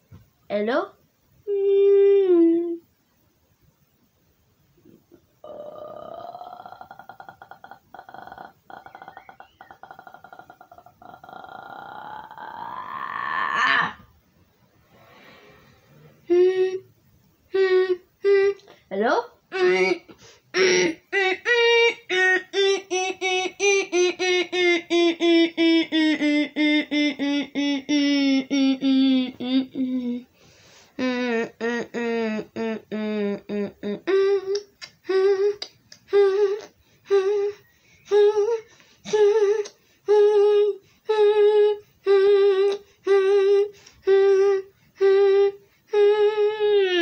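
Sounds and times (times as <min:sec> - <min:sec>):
voice repeating sung syllable: 0:05.0 - 0:14.1, 0:17.5 - 0:30.3, 0:31.0 - 0:47.0.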